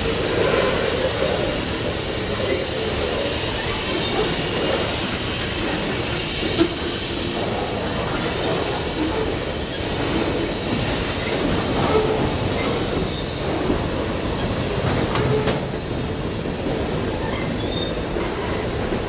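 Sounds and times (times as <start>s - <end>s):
train wheels rumbling on rail: 0.0s - 19.0s
high wheel squeals: 17.2s - 18.6s.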